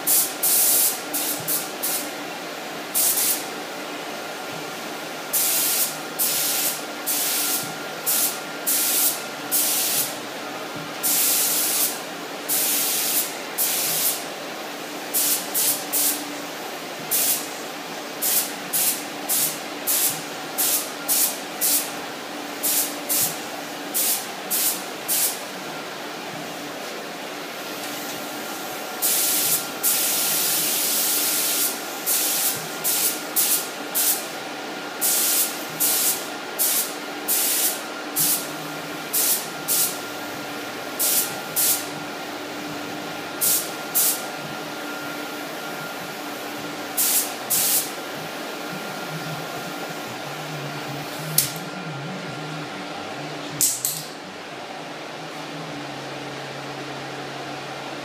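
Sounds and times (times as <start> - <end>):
spray gun hissing: 0.0 - 2.1, 2.9 - 3.4, 5.3 - 10.2, 11.0 - 14.2, 14.8 - 16.2, 17.1 - 17.6, 18.2 - 21.9, 22.6 - 25.4, 28.5 - 34.4, 35.0 - 41.9, 43.4 - 44.2, 46.3 - 48.6
steady hum: 0.0 - 58.0.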